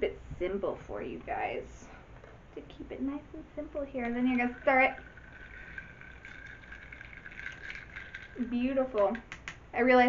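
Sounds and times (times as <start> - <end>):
ice cubes clinking in glass: 4.2 - 9.3.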